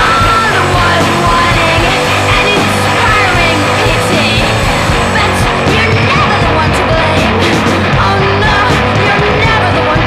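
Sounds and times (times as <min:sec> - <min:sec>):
loud rock band music: 0:00.0 - 0:10.0.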